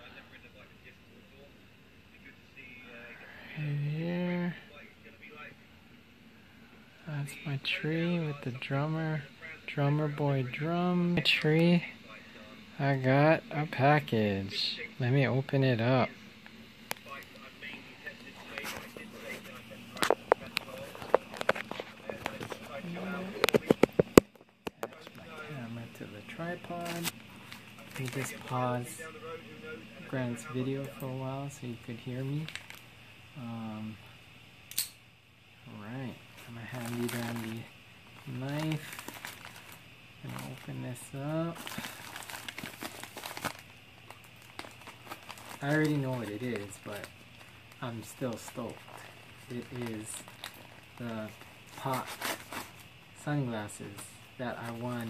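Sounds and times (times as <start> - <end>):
plastic mailer crinkling: 18.4 - 29.0, 32.4 - 32.8, 36.4 - 52.9.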